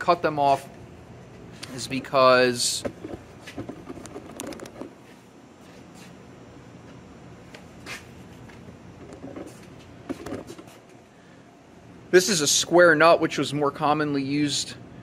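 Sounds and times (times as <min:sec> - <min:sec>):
camera handling rustle: 0:03.0 - 0:04.9.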